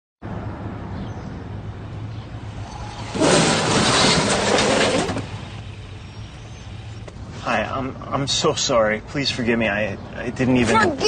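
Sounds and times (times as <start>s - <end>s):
car engine and tyre noise: 0.2s - 11.0s
car collision: 2.5s - 6.1s.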